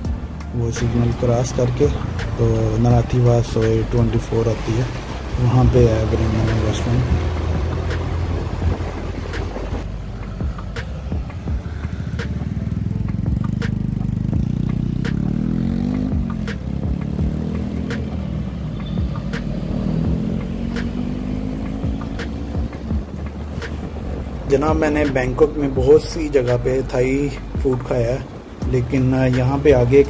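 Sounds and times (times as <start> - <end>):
motorcycle engine accelerating: 5.0 - 24.9.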